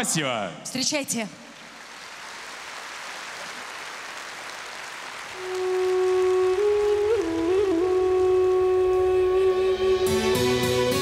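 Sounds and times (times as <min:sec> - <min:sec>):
audience applauding: 0:01.5 - 0:09.0
instrumental music intro: 0:05.4 - 0:11.0.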